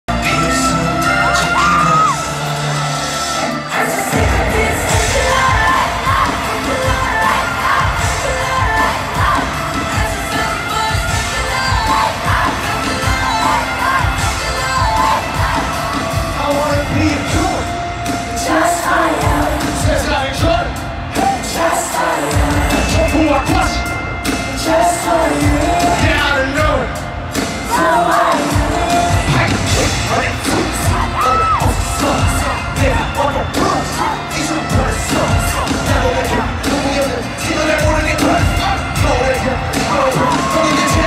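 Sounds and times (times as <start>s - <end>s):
crowd cheering and singing along: 0.0s - 41.0s
singer's amplified voice: 0.0s - 41.0s
backing music with driving beat: 0.1s - 41.0s.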